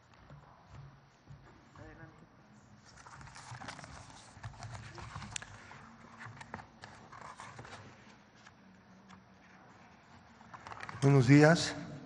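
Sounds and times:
papers and objects handled on lectern: 0:00.0 - 0:11.6.

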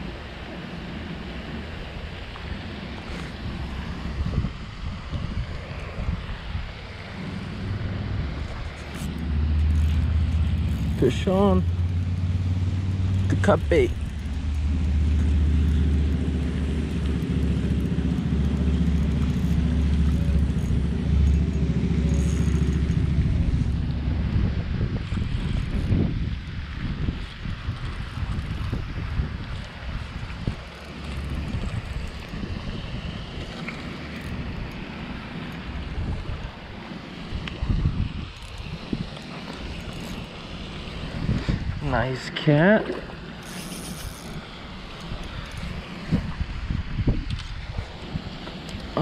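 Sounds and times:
low steady hum: 0:00.0 - 0:49.0
wind buffeting microphone: 0:01.6 - 0:42.4, 0:43.5 - 0:49.0.

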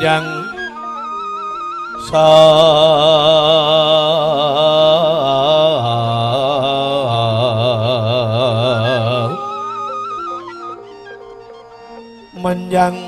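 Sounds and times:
man singing with wavering vibrato: 0:00.0 - 0:13.0.

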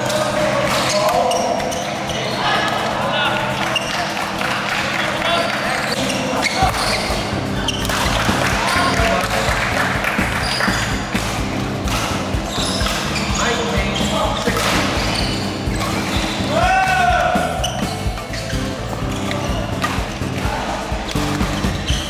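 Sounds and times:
spectators chattering: 0:00.0 - 0:22.0
footwork on court: 0:05.5 - 0:22.0
racket hitting shuttlecock: 0:10.2 - 0:13.1.

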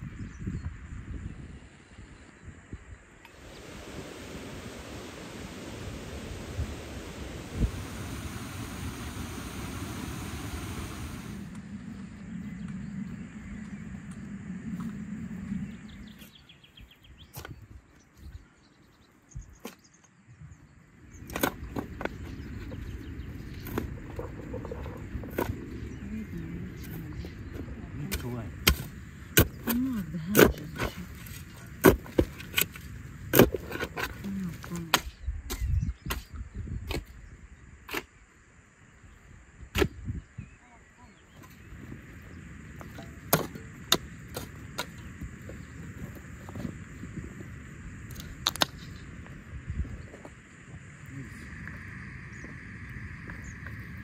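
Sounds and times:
hoe chopping stony soil: 0:21.2 - 0:22.8, 0:27.6 - 0:37.2, 0:39.7 - 0:40.1, 0:42.8 - 0:46.8.

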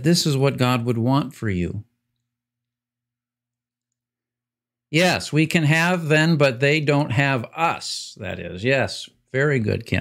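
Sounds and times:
man speaking: 0:00.0 - 0:01.9, 0:04.9 - 0:10.0.

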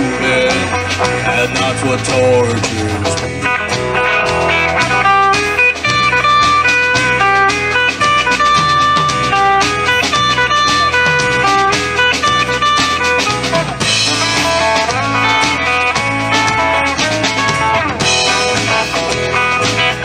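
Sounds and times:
bass guitar: 0:00.0 - 0:20.0
drum kit beat: 0:00.0 - 0:20.0
lead guitar: 0:00.0 - 0:20.0.

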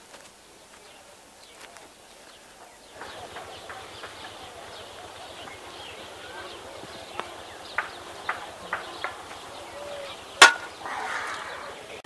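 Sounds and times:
faint outdoor background: 0:00.0 - 0:12.0
sharp knocks: 0:10.4 - 0:10.8
loud crack: 0:10.4 - 0:11.6.

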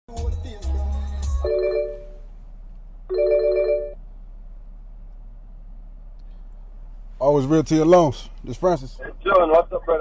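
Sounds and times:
phone ringing: 0:01.4 - 0:02.2, 0:03.1 - 0:04.0.

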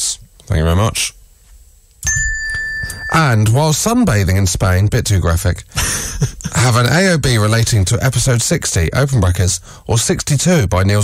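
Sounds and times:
bell-like chime: 0:02.0 - 0:03.5.

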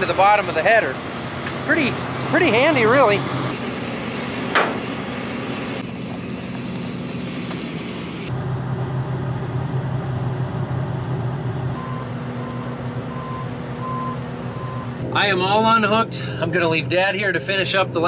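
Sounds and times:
combine engine running: 0:00.0 - 0:18.0
short electronic beeps: 0:11.8 - 0:15.0.

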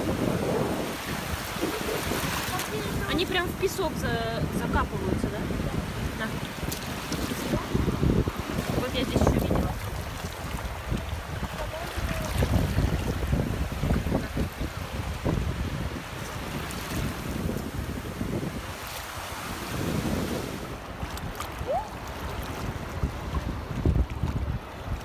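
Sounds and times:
small waves washing on sand: 0:00.0 - 0:25.0
wind rumbling on microphone: 0:00.0 - 0:25.0.

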